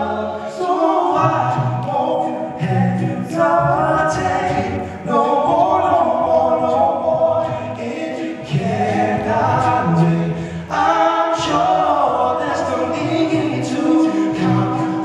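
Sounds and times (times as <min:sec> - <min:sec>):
male a cappella group singing: 0:00.0 - 0:15.0
sung bass line: 0:08.5 - 0:11.8.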